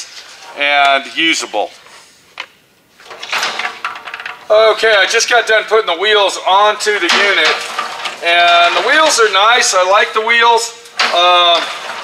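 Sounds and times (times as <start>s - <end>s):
plastic parts scraping and rustling: 3.0s - 12.0s.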